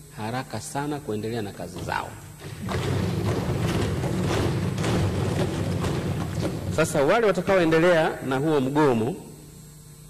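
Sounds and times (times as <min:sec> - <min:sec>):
hands thumping desks: 0:01.7 - 0:07.4.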